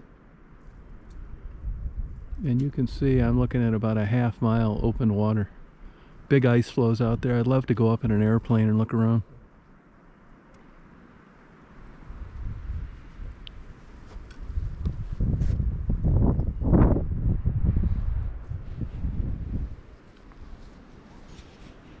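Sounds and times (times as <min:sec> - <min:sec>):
wind buffeting the microphone: 0:00.7 - 0:05.6, 0:12.0 - 0:22.0.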